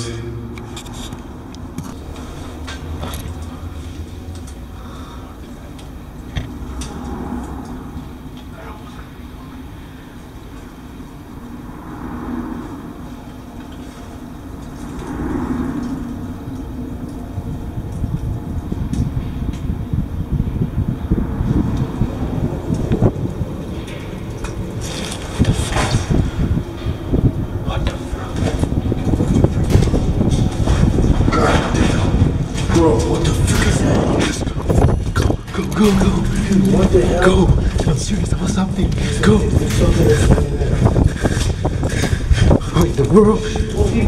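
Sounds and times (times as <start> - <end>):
low rumble of road traffic: 0.0 - 44.0.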